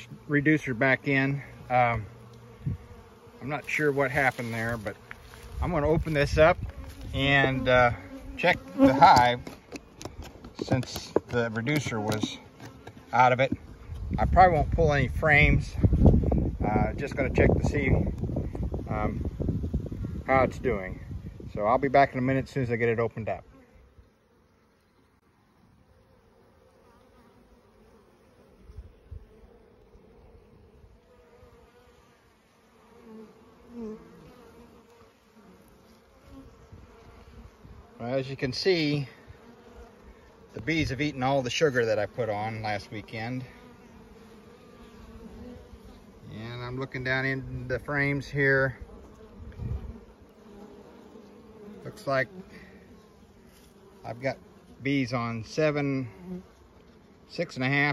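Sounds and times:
bees buzzing close past: 0.0 - 57.9
bees humming: 0.0 - 57.9.

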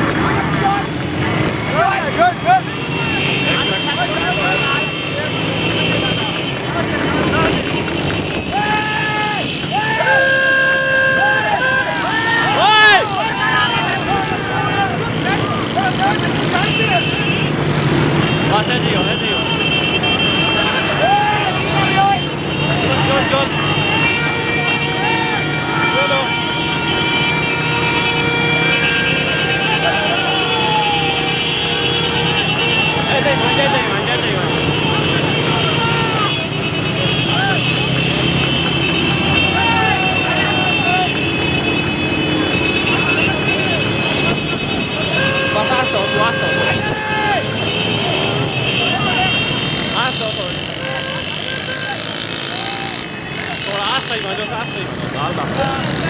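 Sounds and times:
motorcycle and car engines: 0.0 - 56.0
men shouting: 8.5 - 17.2, 20.4 - 36.5, 37.2 - 38.0, 39.1 - 41.4, 45.2 - 54.8
vehicle horn blasts: 9.9 - 12.1, 19.0 - 52.1.

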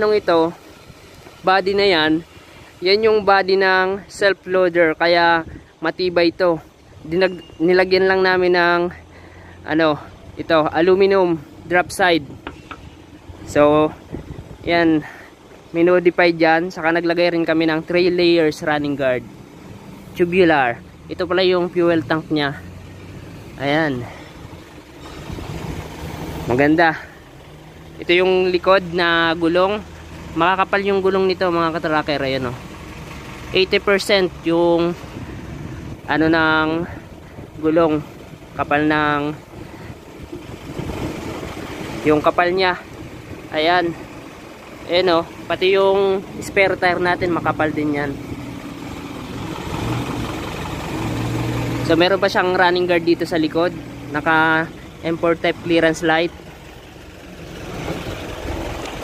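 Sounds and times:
engine hum: 0.0 - 59.0.

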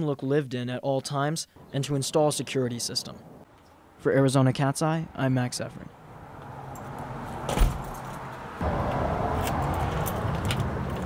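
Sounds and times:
wooden door thudding shut: 7.5 - 7.9.

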